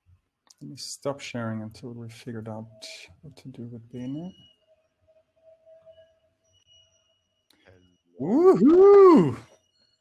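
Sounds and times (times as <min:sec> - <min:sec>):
faint steady electronic tone: 0:00.7 - 0:08.2, 0:09.5 - 0:10.0.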